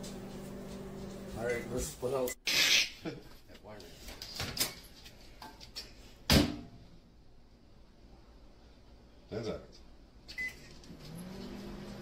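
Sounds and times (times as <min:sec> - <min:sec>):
microwave oven humming: 0:00.0 - 0:01.8, 0:10.4 - 0:12.0.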